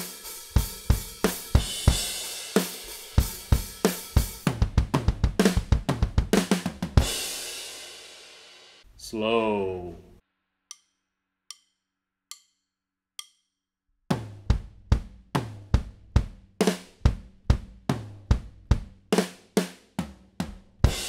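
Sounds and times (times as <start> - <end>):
drum kit fill: 0.0 - 8.8, 14.1 - 21.0
drumsticks clicking together: 10.7 - 10.9, 11.5 - 12.6, 13.2 - 13.4.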